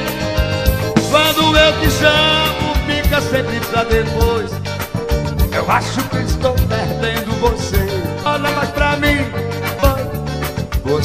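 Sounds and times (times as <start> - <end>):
steady drum beat: 0.0 - 7.9
accordion: 0.0 - 11.0.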